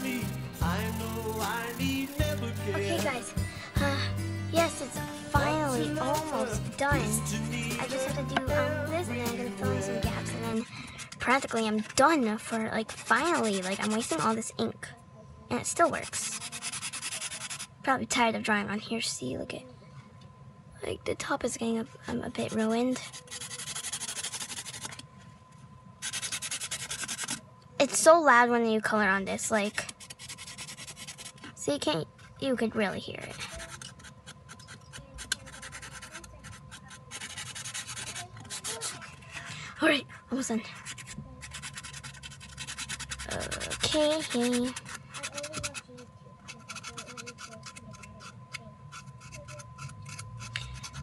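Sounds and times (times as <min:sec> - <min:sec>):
marker scribbling on cardboard: 0:00.0 - 0:03.3, 0:05.4 - 0:08.5, 0:10.1 - 0:14.5, 0:15.7 - 0:17.8, 0:22.4 - 0:25.0, 0:26.0 - 0:27.4, 0:29.6 - 0:31.5, 0:33.2 - 0:39.4, 0:40.7 - 0:51.0.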